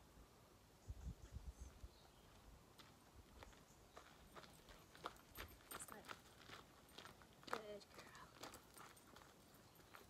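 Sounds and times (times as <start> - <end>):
footsteps crunching on gravel: 2.3 - 10.0.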